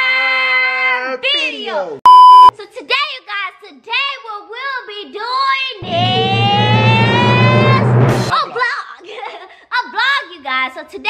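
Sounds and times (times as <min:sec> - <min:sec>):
loud electronic beep: 0:02.1 - 0:02.5, 0:05.8 - 0:08.3
long held vocal note: 0:05.8 - 0:08.3
low buzz: 0:05.8 - 0:08.3.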